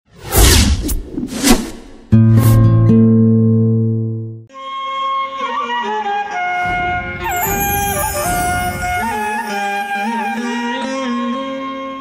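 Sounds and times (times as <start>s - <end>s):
whooshes: 0.1s - 2.1s.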